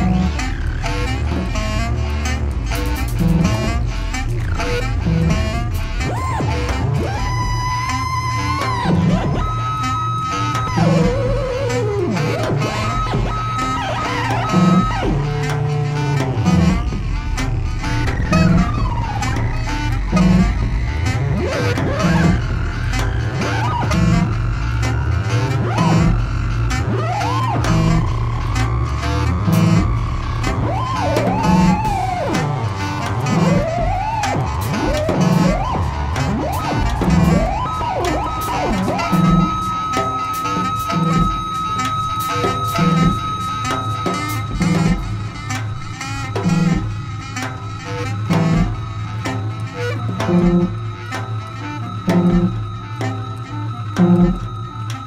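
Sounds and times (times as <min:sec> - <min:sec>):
electric bass drone: 0:00.0 - 0:55.0
high sliding swooping tones: 0:00.0 - 0:55.0
cymbal ticks: 0:49.2 - 0:55.0.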